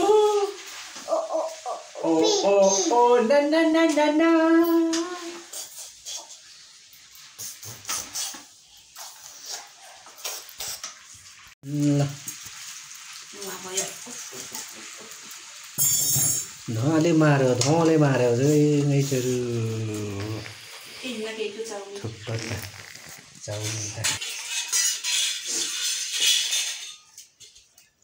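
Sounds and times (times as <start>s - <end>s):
noodles sizzling in a wok: 0.0s - 28.0s.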